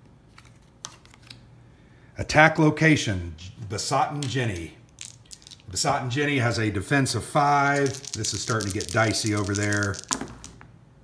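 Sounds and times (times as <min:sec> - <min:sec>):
cardboard cards clicking on board: 0:07.8 - 0:10.6.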